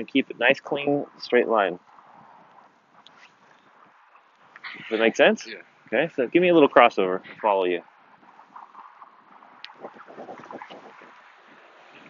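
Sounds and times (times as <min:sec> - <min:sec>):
faint wind: 0:00.0 - 0:12.0.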